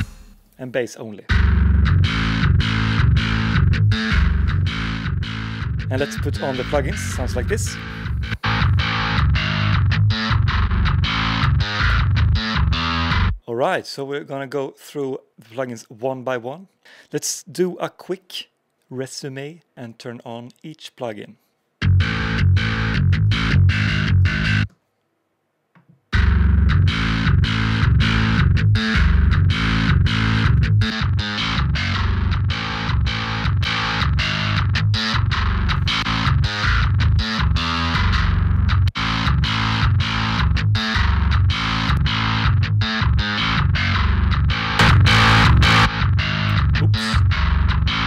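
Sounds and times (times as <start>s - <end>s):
distorted bass riff: 0.0s - 0.6s, 1.3s - 13.4s, 21.8s - 24.7s, 26.1s - 48.0s.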